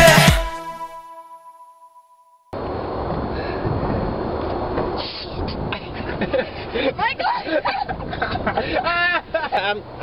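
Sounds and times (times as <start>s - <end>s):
song notes ringing out: 0.0s - 2.5s
loud steady rumbling noise: 2.6s - 8.8s.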